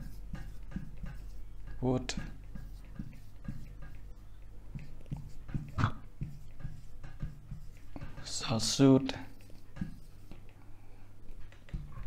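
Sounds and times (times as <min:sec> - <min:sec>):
marker squeaking on whiteboard: 0:00.0 - 0:10.6, 0:11.3 - 0:12.0.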